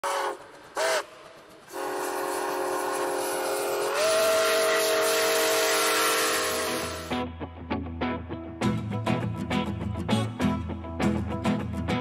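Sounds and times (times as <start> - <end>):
steam locomotive whistle: 0.0 - 7.2.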